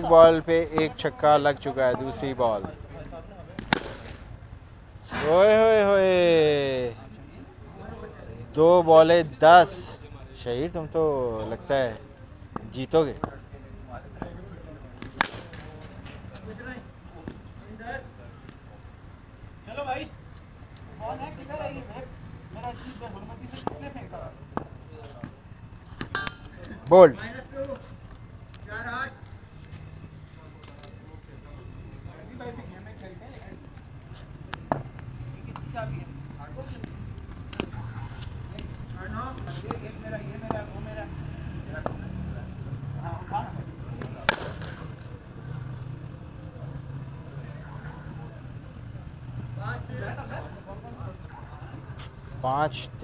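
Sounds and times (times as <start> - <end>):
players calling and shouting: 0.0 - 53.0
sharp knocks of cricket ball: 3.5 - 4.2, 15.0 - 15.9, 44.0 - 44.9.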